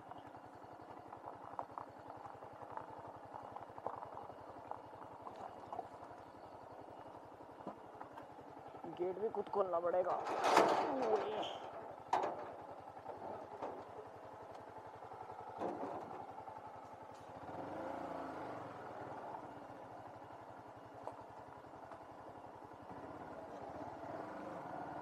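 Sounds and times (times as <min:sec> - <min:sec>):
motorcycle engine running: 0:00.0 - 0:10.0, 0:10.8 - 0:25.0.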